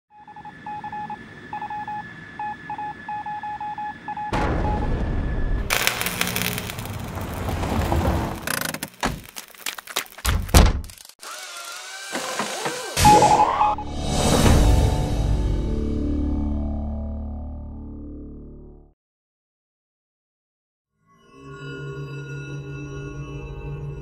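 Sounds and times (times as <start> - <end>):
loud rushing noise: 5.7 - 8.5.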